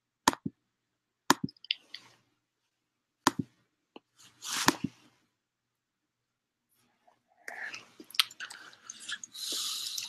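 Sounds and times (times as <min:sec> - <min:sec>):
breathy hiss: 0:08.5 - 0:10.0.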